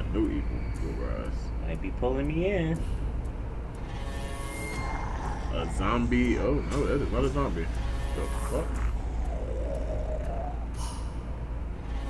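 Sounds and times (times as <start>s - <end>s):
deep low rumble: 8.5s - 11.9s.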